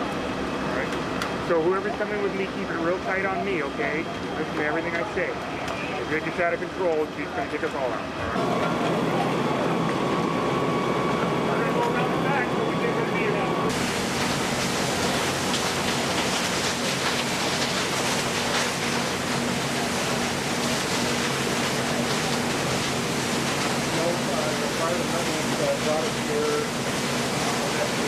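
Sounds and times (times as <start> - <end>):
machinery rumble with whine: 0.0 - 28.0
water hoses spraying hiss: 13.7 - 28.0.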